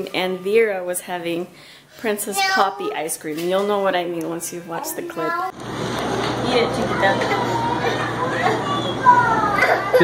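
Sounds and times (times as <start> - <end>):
high child's voice: 2.4 - 2.9, 4.8 - 5.6, 6.9 - 10.0
children chattering: 4.7 - 5.6, 6.6 - 10.0.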